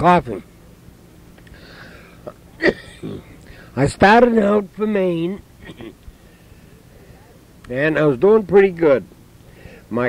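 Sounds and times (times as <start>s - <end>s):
cassette tape hiss: 0.0s - 10.0s
man drawing breath: 1.4s - 2.2s, 3.4s - 3.8s, 9.4s - 9.9s
throat clearing sound: 2.2s - 3.4s, 5.6s - 6.0s.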